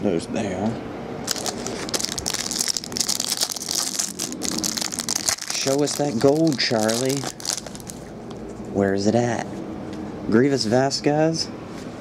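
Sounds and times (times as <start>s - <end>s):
plastic wrapper crinkling: 1.3s - 8.4s.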